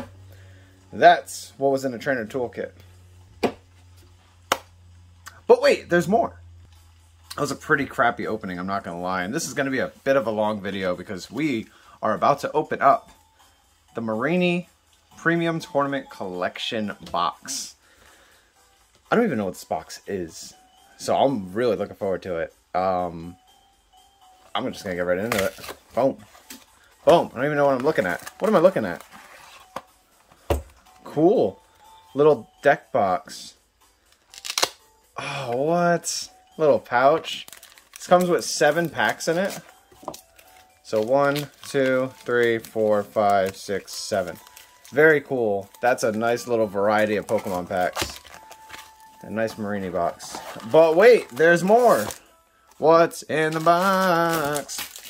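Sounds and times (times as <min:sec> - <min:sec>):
cardboard packaging handled: 0:25.2 - 0:30.8, 0:37.1 - 0:52.3, 0:53.3 - 0:55.0.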